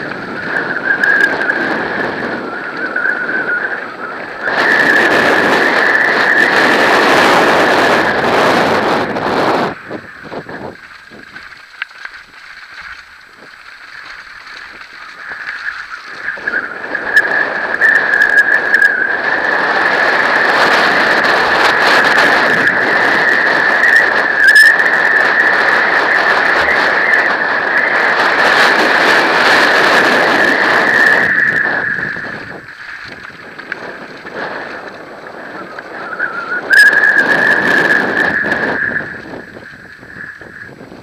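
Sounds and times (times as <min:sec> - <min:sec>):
bike tyre and rattle noise: 0:00.0 - 0:41.0
high-pitched whine: 0:00.0 - 0:41.0.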